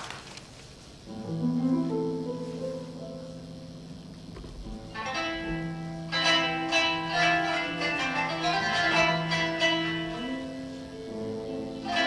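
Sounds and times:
held low notes: 1.0 - 12.0
plucked string instrument: 1.1 - 12.0.

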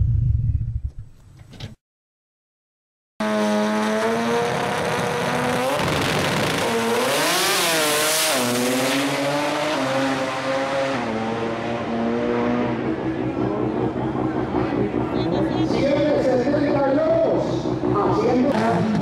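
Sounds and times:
racing car engine running hard: 3.2 - 19.0.

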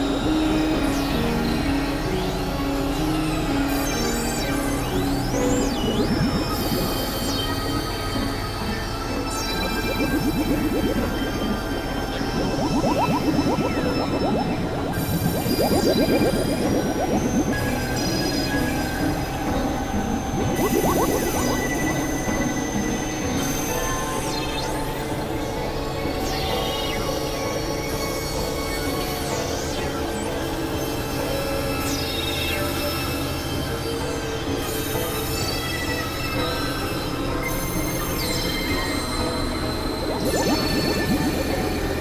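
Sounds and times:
high synthesizer tones: 3.4 - 23.4, 39.8 - 42.0
low hum: 4.4 - 23.4.

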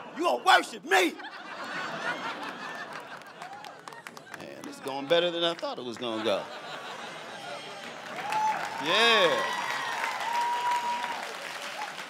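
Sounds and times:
person's voice: 0.2 - 1.2
audience applauding: 2.0 - 12.0.

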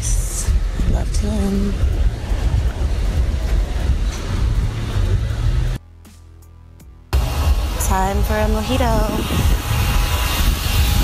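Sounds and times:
wind buffeting microphone: 0.0 - 5.8, 7.2 - 11.0.

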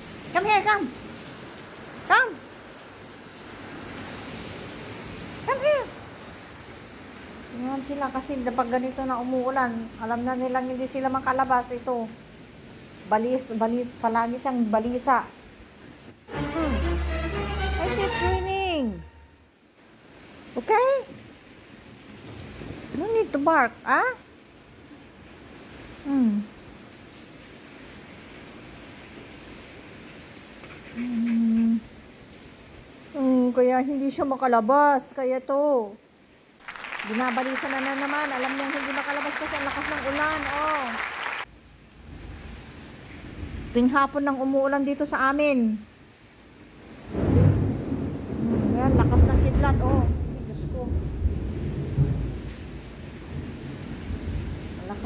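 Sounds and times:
heavy rain hissing: 0.0 - 34.3, 36.2 - 55.0
thunder rumbling: 47.0 - 55.0.

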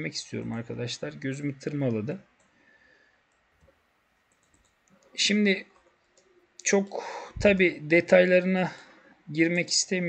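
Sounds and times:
computer mouse clicks: 2.4 - 2.6, 3.3 - 5.2
man's voice: 6.7 - 10.0.

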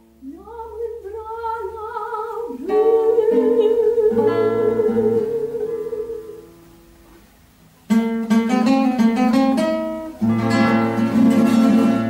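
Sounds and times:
plucked guitar: 0.0 - 12.0
soprano singing held notes: 0.2 - 7.6.

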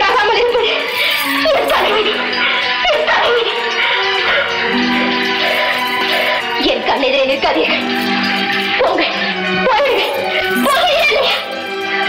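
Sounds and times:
woman speaking: 0.0 - 2.2, 6.6 - 7.8, 8.8 - 11.5
film score sustained chords: 1.7 - 12.0.

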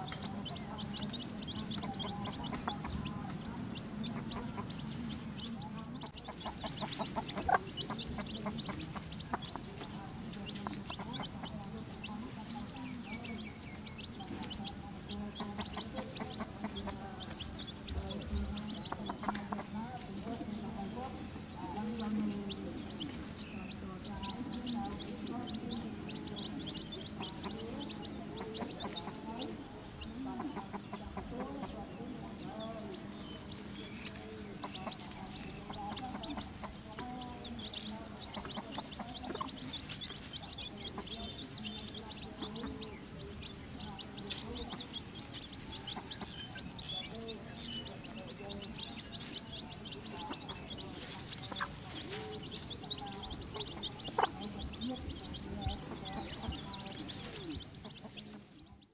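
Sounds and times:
chicks peeping: 0.0 - 58.9
hen clucking: 0.0 - 58.9.

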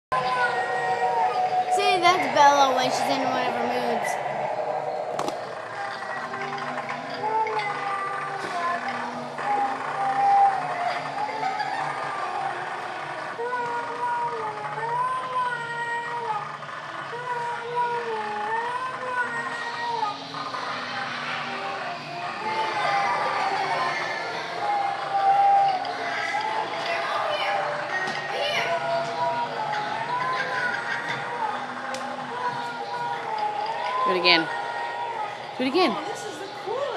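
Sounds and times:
low steady drones: 0.1 - 36.9
eerie warbling tone: 0.7 - 7.8
voices: 19.8 - 36.9.

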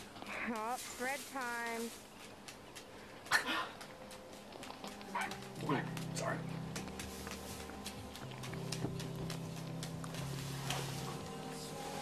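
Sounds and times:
held music chord: 4.0 - 12.0.

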